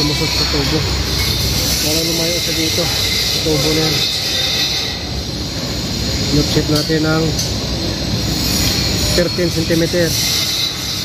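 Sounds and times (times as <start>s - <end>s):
machinery noise: 0.0s - 11.0s.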